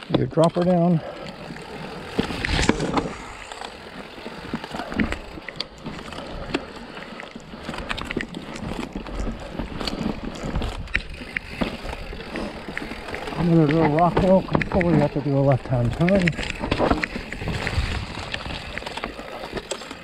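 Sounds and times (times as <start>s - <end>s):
bike knocks and rattles: 0.0s - 20.0s
bike tyres on dirt and rock: 0.0s - 20.0s.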